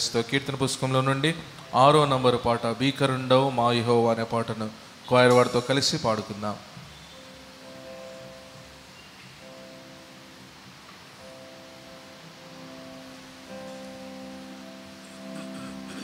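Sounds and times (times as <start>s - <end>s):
soft keyboard chords: 0.0s - 16.0s.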